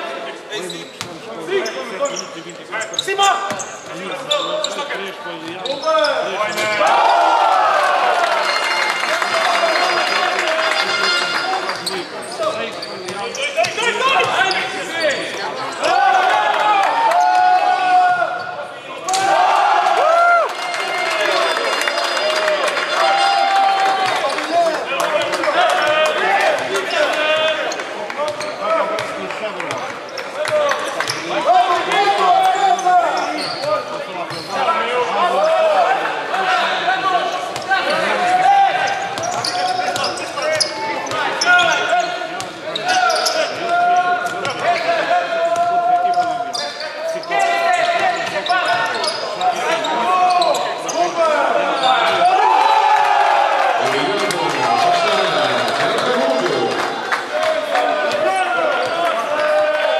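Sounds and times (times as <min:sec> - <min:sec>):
sneakers squeaking on court: 0:00.7 - 0:06.7, 0:10.8 - 0:15.8, 0:28.3 - 0:29.2, 0:32.7 - 0:34.6, 0:37.3 - 0:38.0, 0:38.8 - 0:44.9, 0:46.1 - 0:51.1
players shouting: 0:06.1 - 0:12.5, 0:13.3 - 0:29.1, 0:34.6 - 0:59.9.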